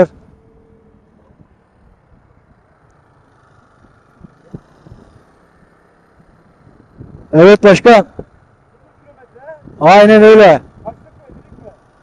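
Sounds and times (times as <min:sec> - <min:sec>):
road noise: 0:00.0 - 0:12.0
wind rumble on microphone: 0:06.2 - 0:07.4, 0:09.6 - 0:11.8.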